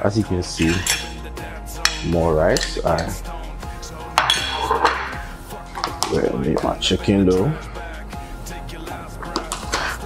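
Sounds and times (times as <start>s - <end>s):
background music: 0.0s - 10.0s
metal fork clinking on plate: 0.6s - 1.2s.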